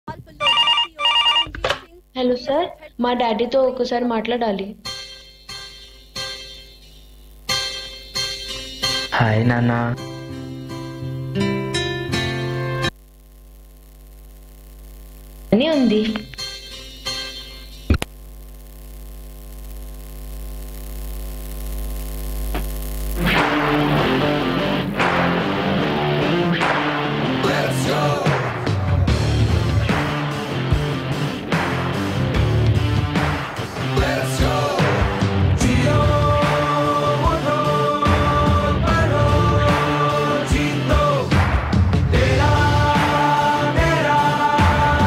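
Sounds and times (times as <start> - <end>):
mains hum from speakers: 0.1 - 45.0
electronic telephone ringing: 0.4 - 1.6
clicks: 17.9 - 18.2
loud music through speakers: 23.2 - 45.0.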